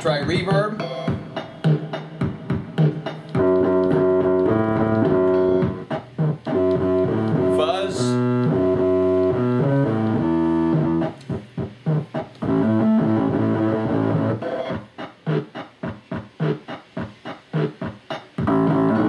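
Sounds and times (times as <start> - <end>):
electronic keyboard with reverb: 0.0 - 19.0.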